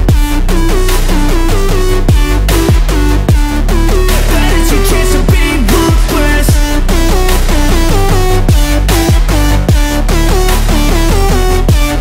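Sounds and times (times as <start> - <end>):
deep kick drum: 0.0 - 0.6, 2.1 - 7.1, 8.4 - 10.1, 11.7 - 12.0.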